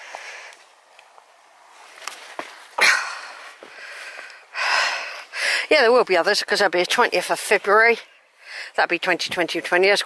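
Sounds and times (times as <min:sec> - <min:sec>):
footsteps on stony path: 0:00.0 - 0:04.3.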